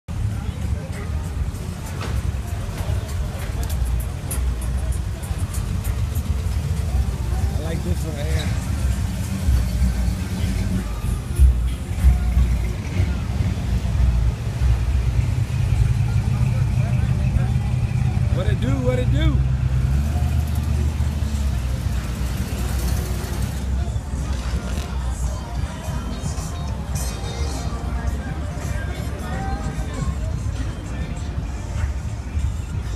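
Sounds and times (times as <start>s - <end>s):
car engine rumbling: 0.1s - 32.9s
faint voices: 0.1s - 32.9s
music with heavy bass: 0.1s - 32.9s
background voices: 20.4s - 32.9s.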